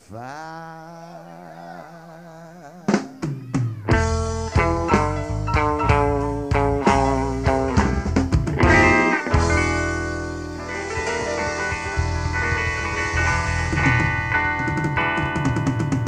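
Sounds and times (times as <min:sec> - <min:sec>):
blues band with guitar and drums: 0:02.8 - 0:16.0.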